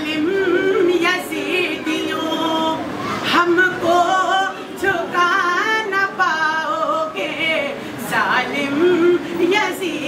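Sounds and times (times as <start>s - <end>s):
unaccompanied devotional singing: 0.0s - 10.0s.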